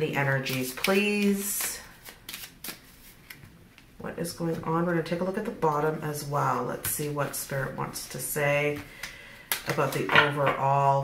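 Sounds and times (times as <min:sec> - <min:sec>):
cards rustling: 0:00.4 - 0:03.8.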